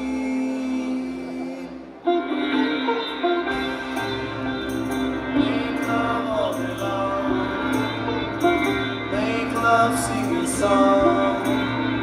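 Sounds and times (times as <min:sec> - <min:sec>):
steady drone: 0:00.0 - 0:12.0
sitar playing: 0:02.0 - 0:12.0.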